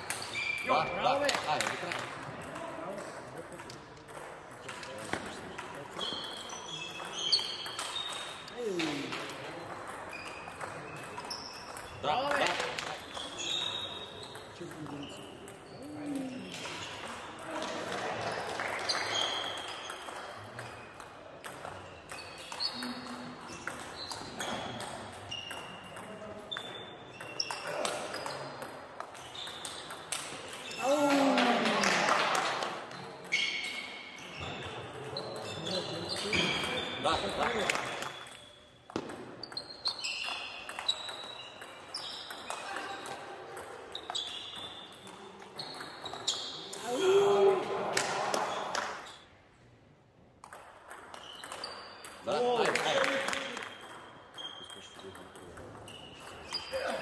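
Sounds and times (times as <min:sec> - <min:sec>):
table tennis ball pinging: 0:01.5 - 0:18.0, 0:18.7 - 0:30.8, 0:33.2 - 0:46.6, 0:50.4 - 0:56.8.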